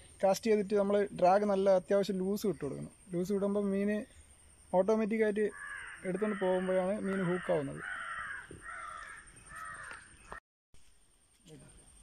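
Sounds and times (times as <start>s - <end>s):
bird calling: 2.1s - 10.4s.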